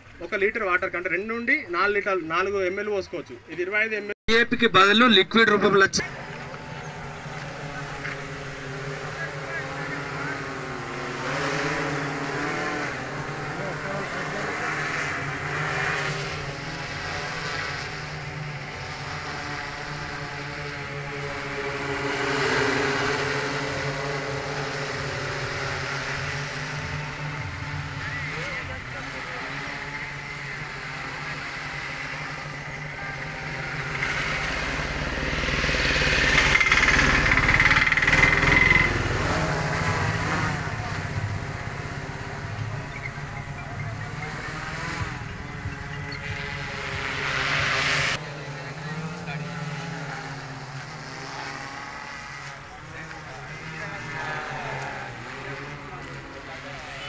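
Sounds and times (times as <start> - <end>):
drone rotors buzzing: 4.3 - 57.0
background voices: 52.4 - 57.0.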